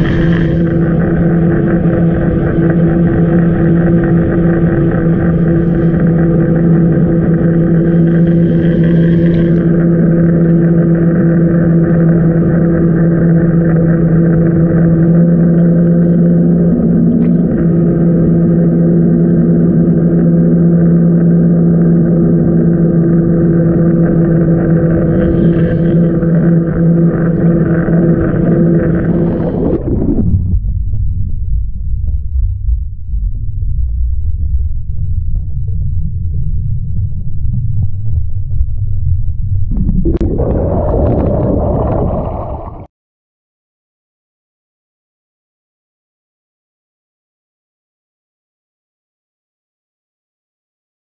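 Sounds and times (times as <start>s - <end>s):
muffled underwater boat engine drone: 0.0s - 42.9s.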